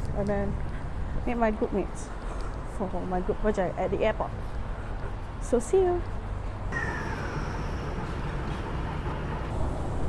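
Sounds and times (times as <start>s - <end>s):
train motor whine: 6.7s - 10.0s
train rumble: 6.7s - 10.0s.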